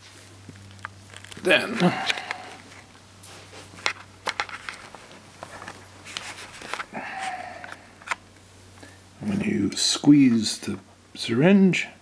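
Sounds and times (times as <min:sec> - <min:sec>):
low steady hum: 0:00.0 - 0:12.0
hands handling camera clicks: 0:03.8 - 0:04.9.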